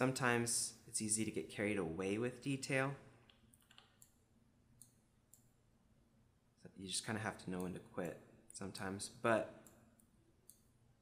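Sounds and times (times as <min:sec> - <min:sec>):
faint keyboard and mouse clicks: 0:03.2 - 0:04.2.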